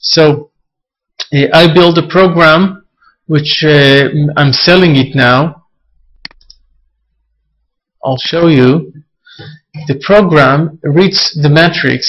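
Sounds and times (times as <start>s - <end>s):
computer mouse clicks: 6.2s - 6.6s.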